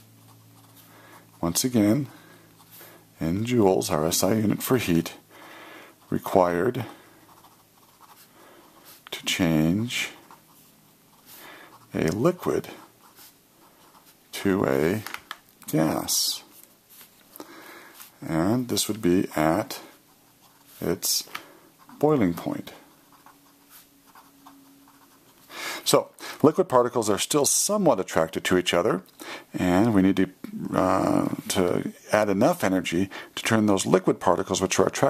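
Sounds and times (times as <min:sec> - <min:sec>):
pen scratching on paper: 0:00.0 - 0:01.5, 0:07.2 - 0:09.0, 0:10.0 - 0:14.2, 0:20.0 - 0:21.0, 0:21.8 - 0:25.5.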